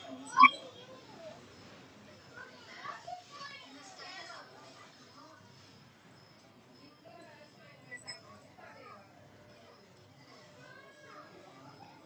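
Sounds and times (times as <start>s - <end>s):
faint children's voices: 0.0s - 5.7s, 6.6s - 12.0s.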